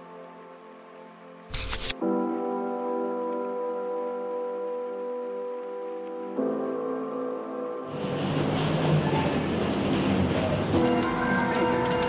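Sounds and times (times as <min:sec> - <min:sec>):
music with held tones: 0:00.0 - 0:12.0.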